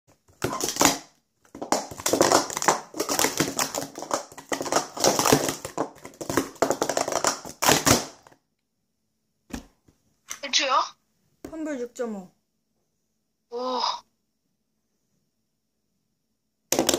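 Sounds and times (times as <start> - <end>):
plastic cups clattering: 0.2 - 8.4.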